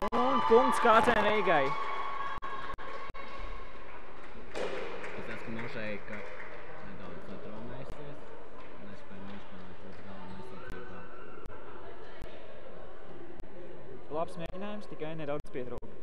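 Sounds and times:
steady room noise: 0.0 - 16.0.

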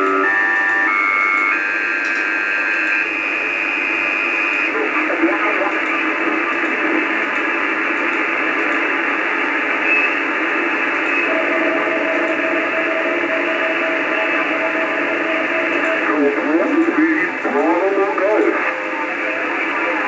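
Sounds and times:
radio hiss: 4.6 - 20.0
garbled radio voice: 4.7 - 7.2, 15.8 - 18.8.

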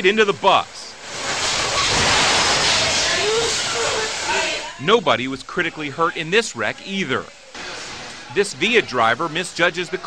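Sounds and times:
loud steady hissing: 0.0 - 10.0.

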